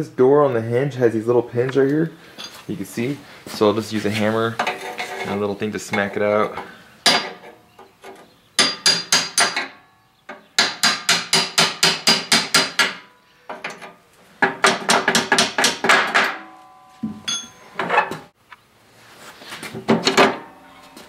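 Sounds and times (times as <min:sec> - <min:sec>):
hammer striking metal punch: 0:08.6 - 0:13.1, 0:14.4 - 0:17.6.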